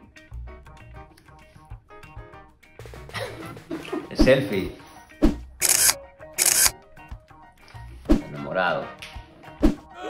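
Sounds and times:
camera shutter snaps: 0:05.6 - 0:06.8.

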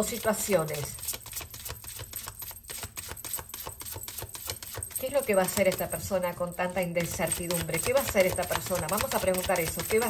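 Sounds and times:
cards being shuffled: 0:00.0 - 0:06.0, 0:07.0 - 0:10.0.

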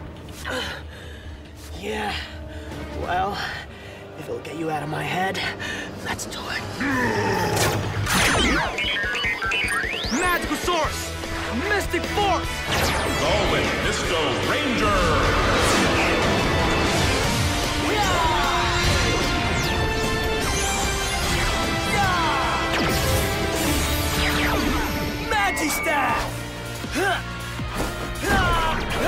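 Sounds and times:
faint background music: 0:00.0 - 0:08.7
sustained action music: 0:00.0 - 0:29.0
short electronic beeps: 0:08.3 - 0:10.7.

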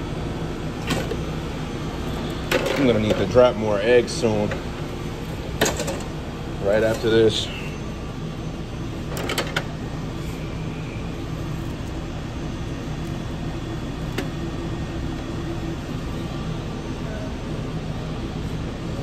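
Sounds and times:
kitchen equipment and ventilation hum: 0:00.0 - 0:19.0.

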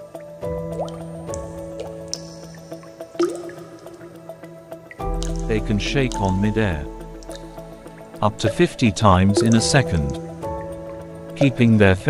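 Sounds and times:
soft ambient music: 0:00.0 - 0:12.0
water drops plinking: 0:00.6 - 0:12.0.

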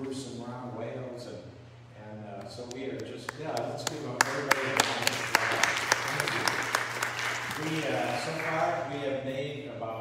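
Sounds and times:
audience applauding: 0:04.2 - 0:08.8.

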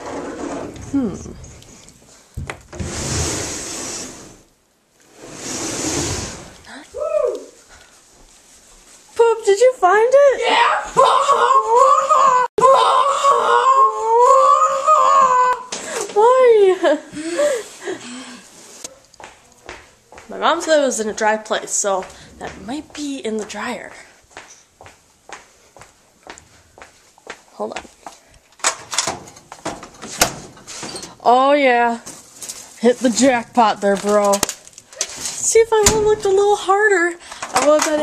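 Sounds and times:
child wailing: 0:07.0 - 0:07.6, 0:10.4 - 0:15.7.

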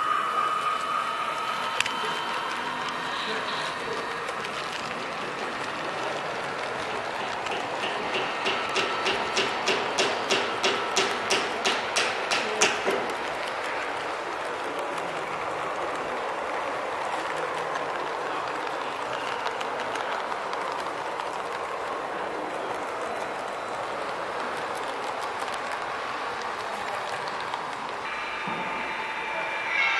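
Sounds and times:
model train wheels clicking: 0:00.0 - 0:28.2
busy hall background noise: 0:00.0 - 0:29.9.

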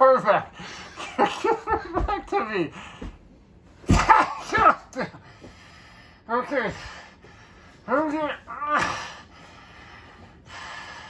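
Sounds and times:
person breathing hard: 0:05.2 - 0:07.9, 0:08.8 - 0:11.0.

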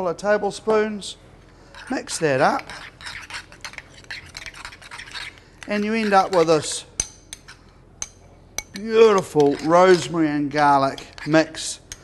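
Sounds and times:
metal spoon clinking glass bowl: 0:02.6 - 0:10.1.

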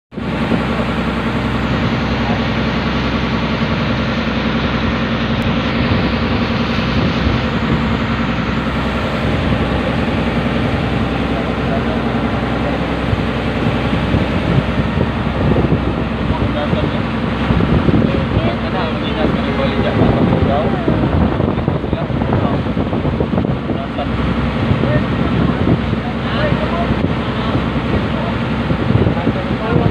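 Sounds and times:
boat engine droning: 0:00.1 - 0:29.9.

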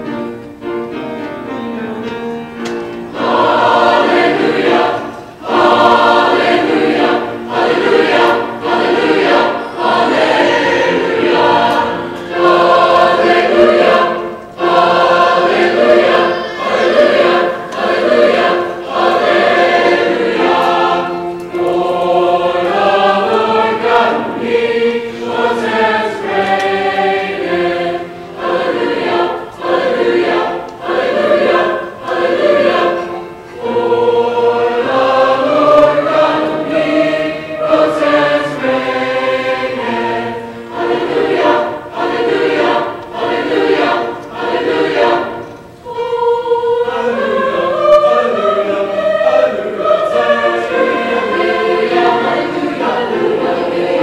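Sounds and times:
school chorus singing: 0:01.4 - 0:54.0.

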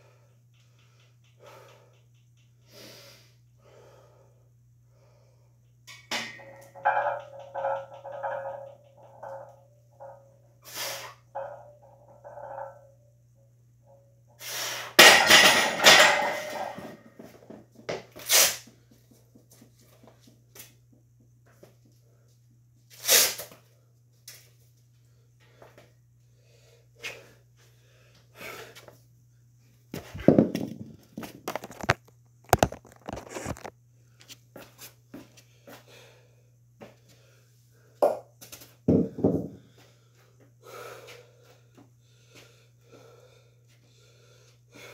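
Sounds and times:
gym equipment knocks and clanks: 0:05.9 - 0:10.5, 0:15.0 - 0:18.1, 0:30.0 - 0:33.1, 0:38.9 - 0:39.7.

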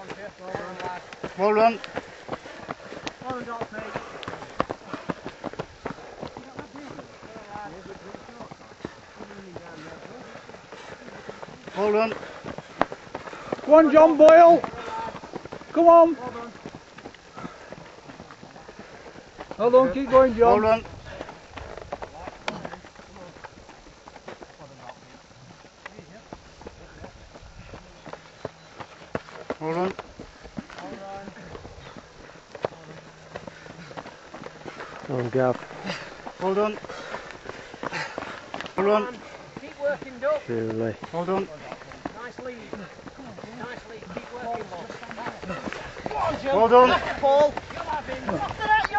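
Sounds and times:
footsteps running on stony path: 0:00.0 - 0:48.9.

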